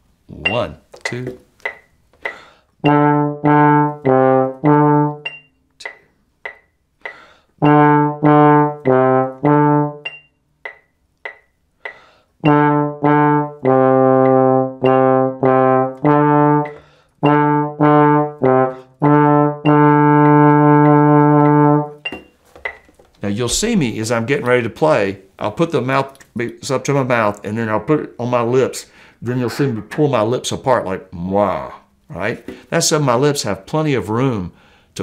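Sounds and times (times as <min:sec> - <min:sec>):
trombone playing notes: 0:02.8 - 0:05.3, 0:07.6 - 0:10.1, 0:12.4 - 0:22.0, 0:29.2 - 0:30.3
faint metronome ticks: 0:03.9 - 0:07.8, 0:08.8 - 0:12.6, 0:13.6 - 0:17.4, 0:19.0 - 0:22.1.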